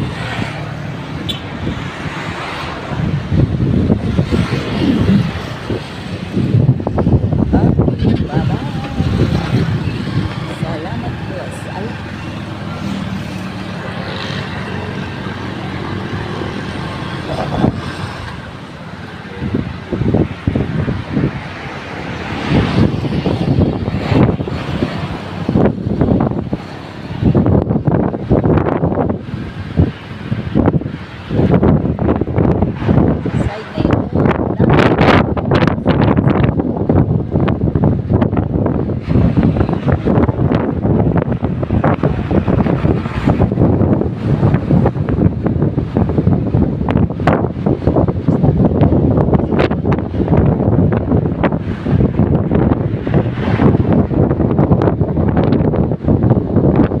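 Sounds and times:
vehicle engine and road noise: 0.0 - 57.0
wind buffeting microphone: 0.0 - 57.0.

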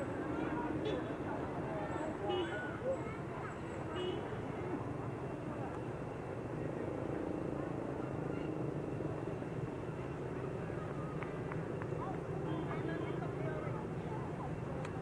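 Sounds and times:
murmur of voices: 0.0 - 15.0.

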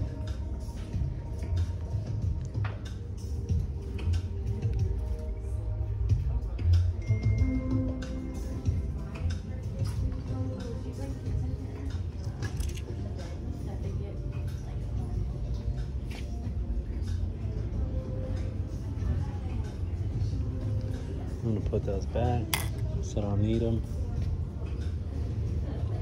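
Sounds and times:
faint background music: 0.0 - 26.0.

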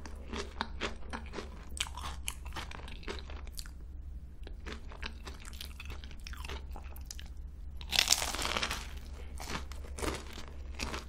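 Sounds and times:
chewing crunchy pastry: 0.0 - 3.8, 4.4 - 11.0
steady low hum: 0.0 - 11.0.

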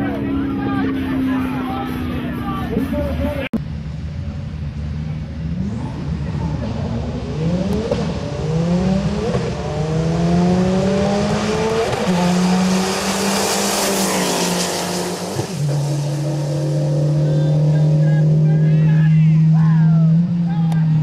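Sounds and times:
cars passing rush: 0.0 - 21.0
drag racing cars accelerating: 0.0 - 21.0.

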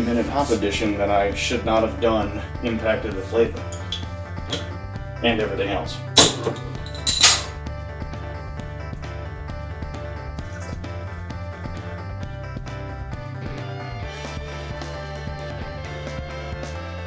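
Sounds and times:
guitar music: 0.0 - 17.0
bottle cap prised off: 6.2 - 7.5.

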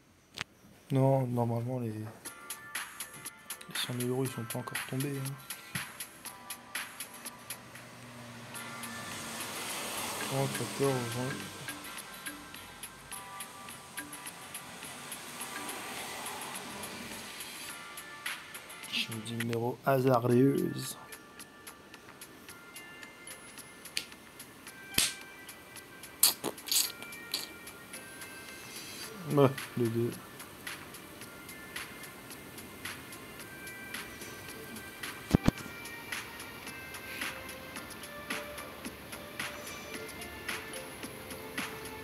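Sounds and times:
phone game background music: 1.0 - 42.0
steady hiss: 8.5 - 20.7, 25.6 - 42.0.

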